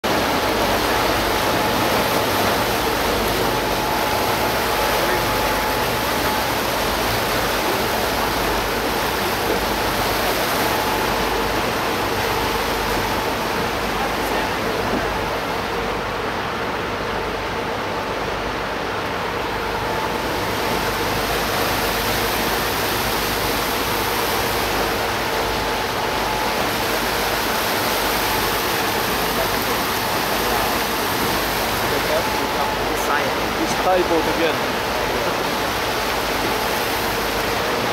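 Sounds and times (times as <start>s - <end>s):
water and air rushing past boat: 0.0s - 37.9s.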